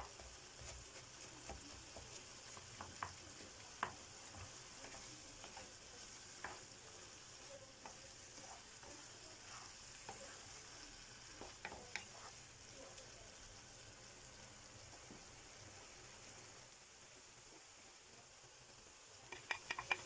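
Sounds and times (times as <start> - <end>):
wooden spoon scraping a pan: 0.0 - 13.0, 19.2 - 20.0
food sizzling in a frying pan: 0.0 - 20.0.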